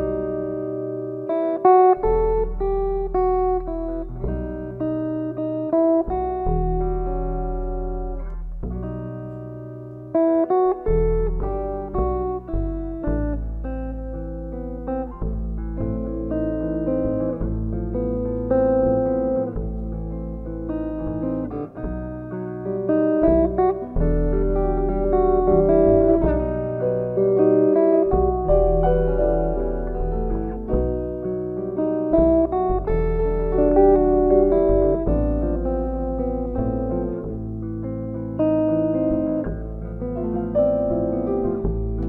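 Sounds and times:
electric guitar single notes: 0:00.0 - 0:42.0
plucked double bass: 0:00.0 - 0:42.0.

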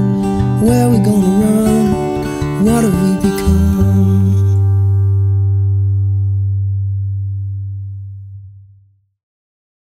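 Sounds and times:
deep sustained musical note: 0:04.0 - 0:09.0.

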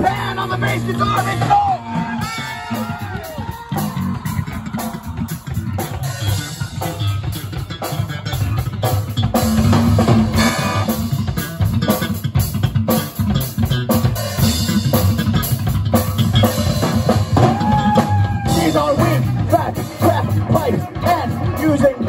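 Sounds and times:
drum kit pounding: 0:00.0 - 0:22.0
rock band playing live: 0:00.0 - 0:22.0.

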